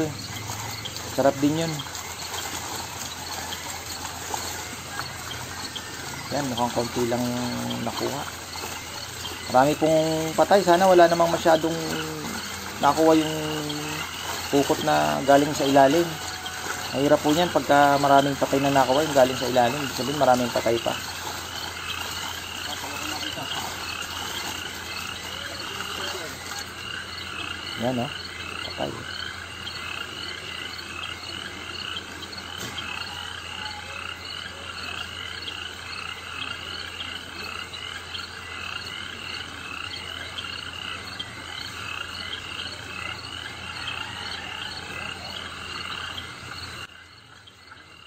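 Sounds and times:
fish flapping and splashing: 0.0 - 27.7
frogs calling in chorus: 0.0 - 48.0.

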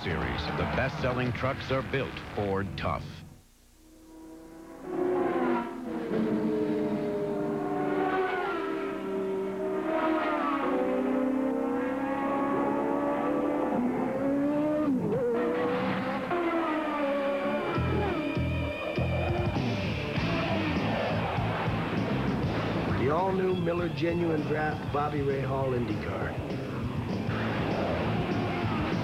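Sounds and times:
music: 0.0 - 7.8, 17.5 - 29.0
race car engines at high revs: 4.7 - 29.0.

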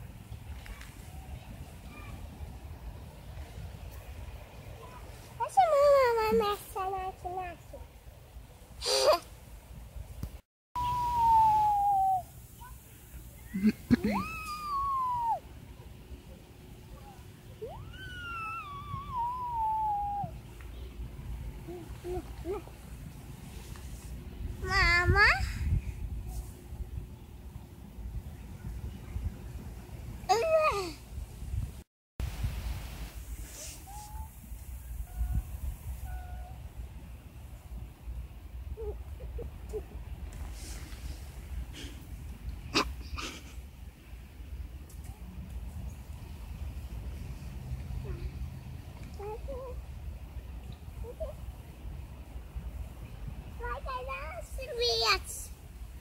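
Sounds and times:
short laugh: 13.5 - 14.2, 42.7 - 43.6
girl making high calls: 14.0 - 15.4, 17.6 - 20.4, 21.6 - 22.7
wind buffeting microphone: 17.6 - 23.5, 24.1 - 33.2.

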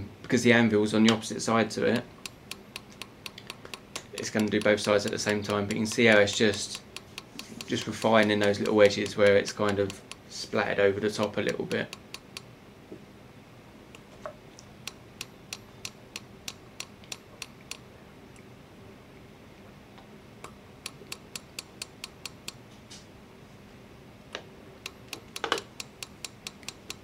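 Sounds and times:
small hammer tapping on metal: 2.0 - 10.2, 11.1 - 12.5, 24.9 - 27.0.

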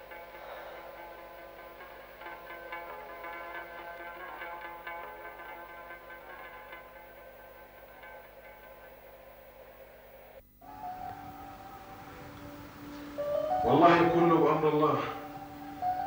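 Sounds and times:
background music of held notes: 0.0 - 16.0.

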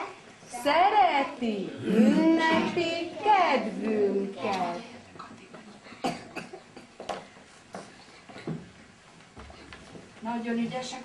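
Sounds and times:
short coughs: 5.9 - 7.0.

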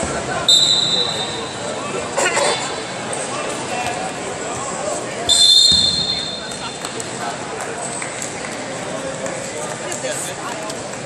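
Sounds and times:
referee whistle blast: 0.5 - 1.5, 5.3 - 6.7.

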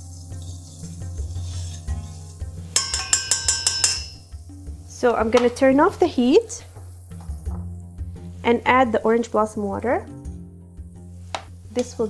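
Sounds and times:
soft background music: 0.0 - 12.0
spoon clinking against saucepan: 2.0 - 4.3.

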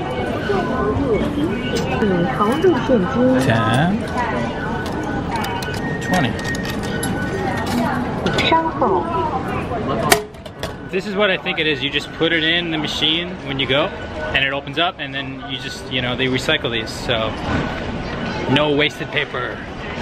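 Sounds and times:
voices chattering: 0.0 - 20.0.

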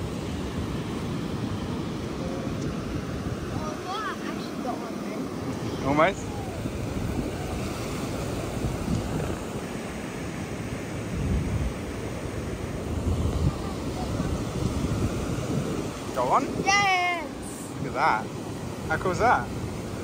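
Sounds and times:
small waves washing over sand: 0.0 - 20.0
wind buffeting microphone: 0.0 - 20.0
child's excited voice: 3.5 - 5.0, 16.6 - 17.7.

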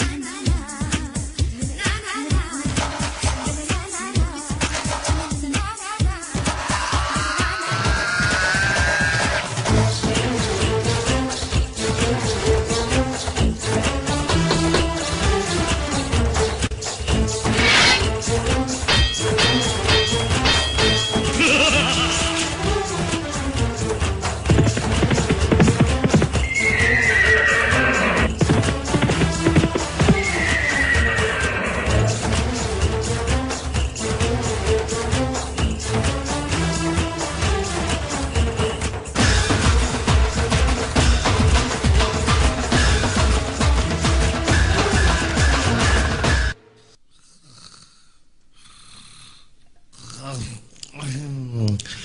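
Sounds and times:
horse whinny: 6.6 - 9.5, 24.6 - 32.1
hoofbeat clip-clop: 24.4 - 30.7
person snoring: 47.1 - 50.6.

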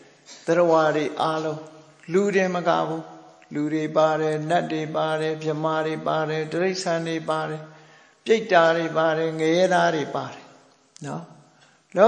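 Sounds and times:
man chanting in monotone: 0.0 - 11.4.

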